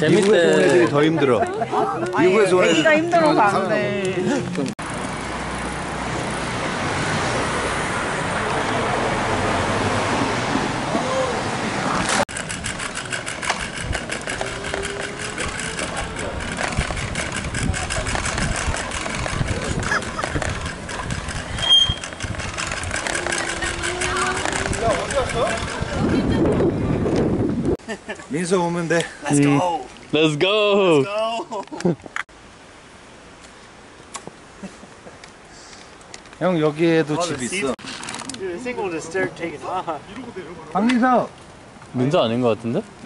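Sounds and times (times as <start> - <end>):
street traffic: 0.0 - 43.0
wind noise on microphone: 10.5 - 27.8.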